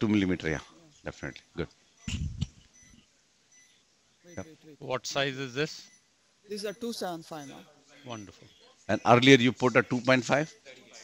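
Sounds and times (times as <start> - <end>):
faint steady high tone: 1.2 - 8.8.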